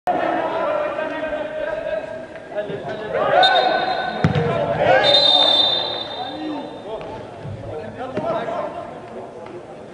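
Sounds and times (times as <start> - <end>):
referee whistle blasts: 3.3 - 4.3, 4.9 - 6.7.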